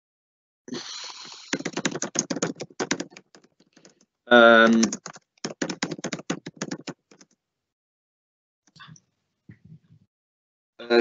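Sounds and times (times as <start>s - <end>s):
computer keyboard typing: 1.2s - 4.0s, 4.6s - 7.3s.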